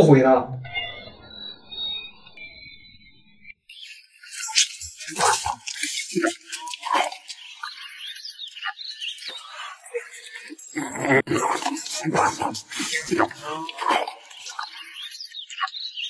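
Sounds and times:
person slurping and chewing noodles: 4.3 - 7.7, 9.4 - 14.7.

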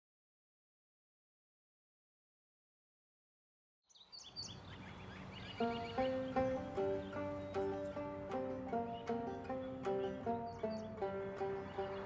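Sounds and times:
birds chirping: 3.9 - 12.0
outdoor background noise: 3.9 - 12.0
plucked string music: 5.6 - 12.0.

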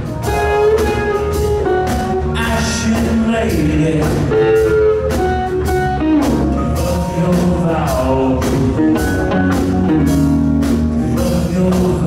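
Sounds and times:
bent electric guitar notes: 0.0 - 12.0
blues-rock band playing: 0.0 - 12.0.

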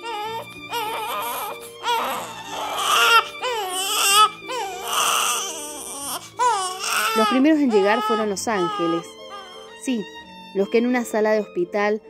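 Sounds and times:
newborn baby crying: 0.0 - 9.8.

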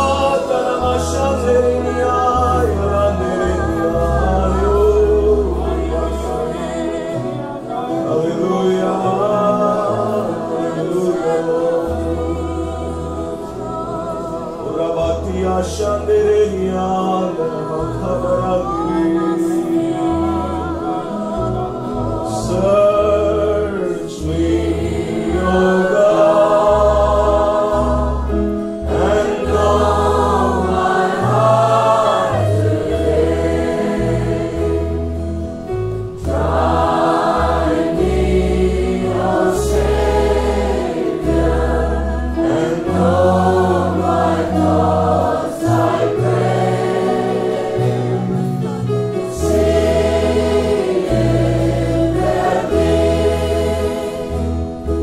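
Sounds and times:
choir singing slow song: 0.0 - 55.0
instrumental accompaniment: 0.0 - 55.0.

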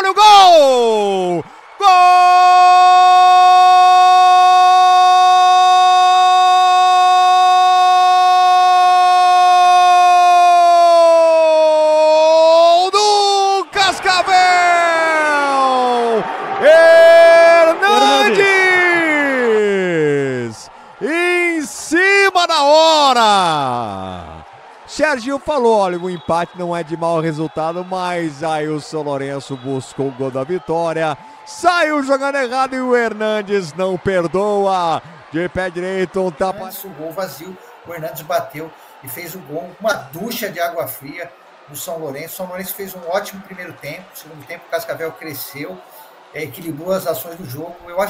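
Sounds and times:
commentator shouting: 0.0 - 26.0
commentator's long goal cry: 1.8 - 24.3.

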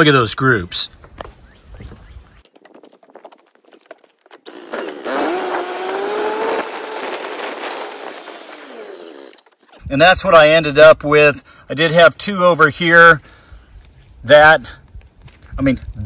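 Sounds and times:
motor running with wavering pitch: 4.5 - 9.5.

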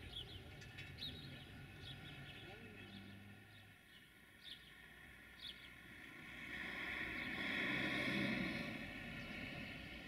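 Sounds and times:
small birds chirping: 0.0 - 6.0.

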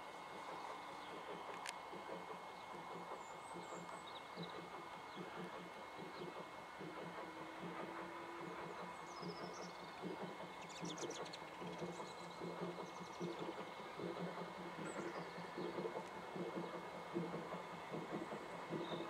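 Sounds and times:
distant steam locomotive exhaust beats: 0.0 - 19.0.

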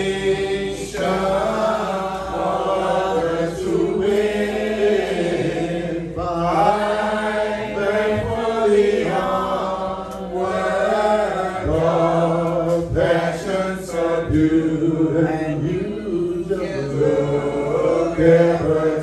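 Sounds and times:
congregation singing a hymn: 0.0 - 19.0.

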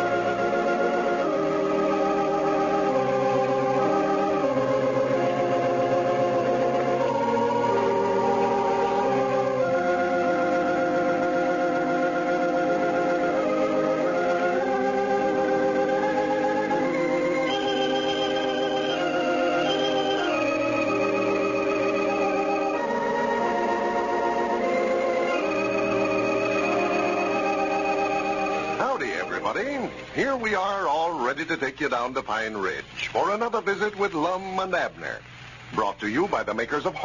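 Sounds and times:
organ playing slow chords: 0.0 - 32.0.

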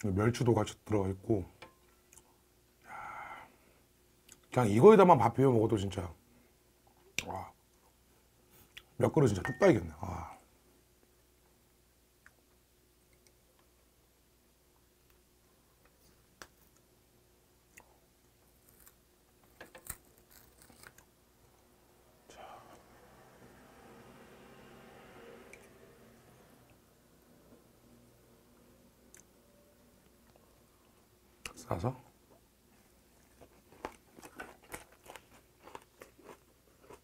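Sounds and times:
mouth chewing food: 33.2 - 37.0.

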